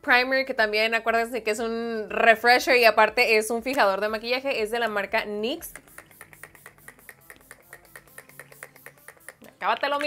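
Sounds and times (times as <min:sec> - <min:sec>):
spray bottle spritzes: 0:05.6 - 0:10.0.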